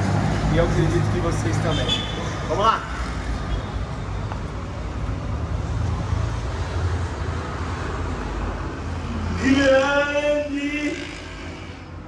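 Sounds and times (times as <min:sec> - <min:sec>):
low rumble of road traffic: 0:00.0 - 0:12.0.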